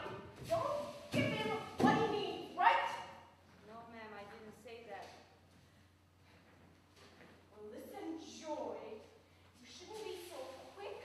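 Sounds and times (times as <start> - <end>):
person speaking: 0.0 - 5.0.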